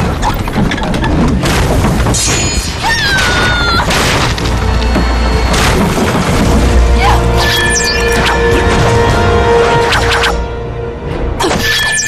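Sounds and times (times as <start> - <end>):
fight scene music: 3.8 - 12.0.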